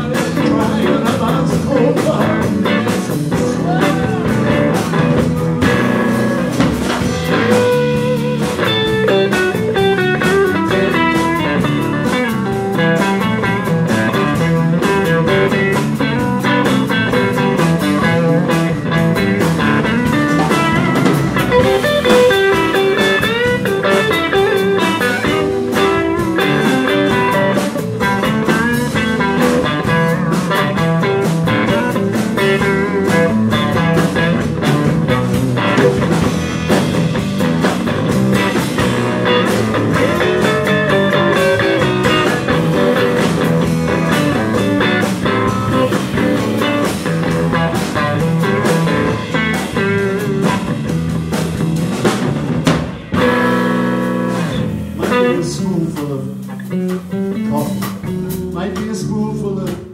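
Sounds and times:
bass guitar: 0.0s - 59.9s
drums: 0.0s - 59.9s
lead electric guitar with bent notes: 0.0s - 59.9s
acoustic guitar: 35.6s - 36.4s.

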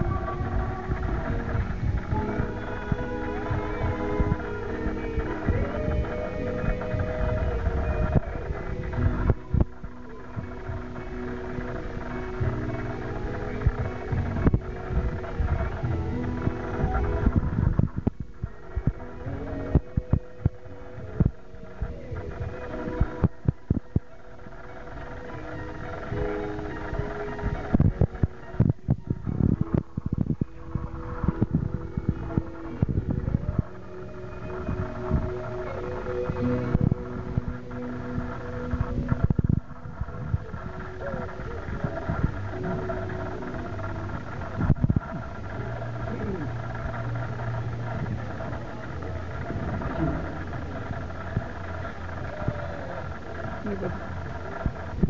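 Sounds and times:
short low thumps: 0.0s - 55.0s.

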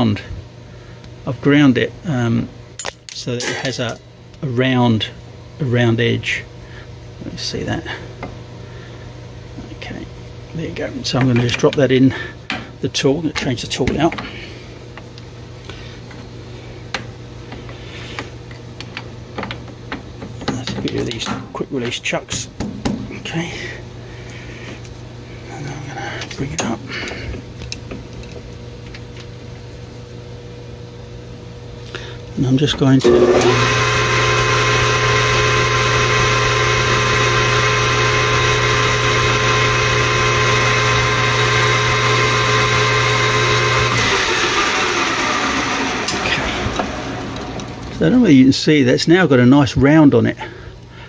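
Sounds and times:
steady low hum: 0.0s - 43.9s
metal lathe motor hum and whine: 33.0s - 48.0s.

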